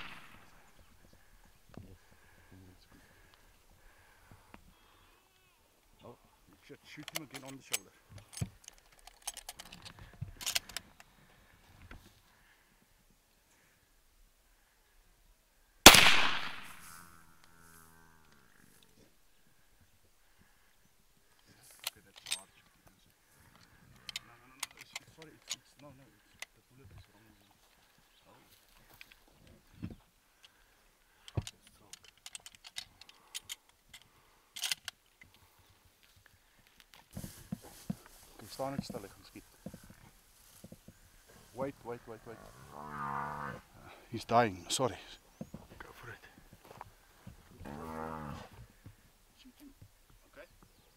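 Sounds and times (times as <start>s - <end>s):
rifle shot with echo: 0.0s - 0.5s, 15.9s - 16.9s.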